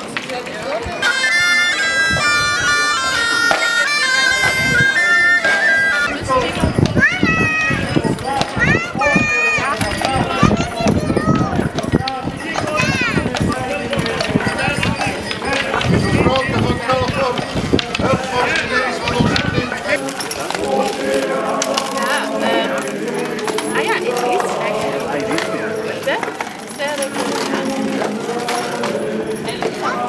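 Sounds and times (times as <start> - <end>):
harness chains jingling: 1.0 - 30.0
background voices: 2.0 - 30.0
horse hooves on asphalt: 6.2 - 30.0.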